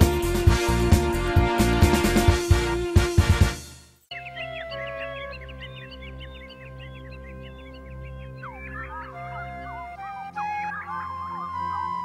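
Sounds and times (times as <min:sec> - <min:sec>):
film music with low notes: 0:00.0 - 0:12.0
chirping squawking bird calls: 0:04.1 - 0:12.0.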